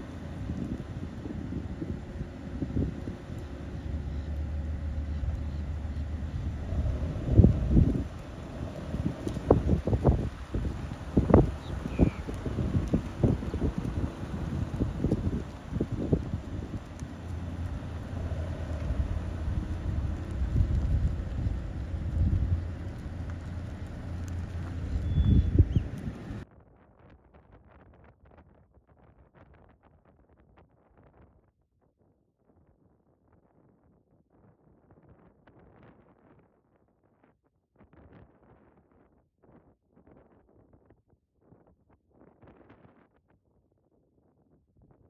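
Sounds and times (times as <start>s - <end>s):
wind buffeting microphone: 0.0s - 26.4s.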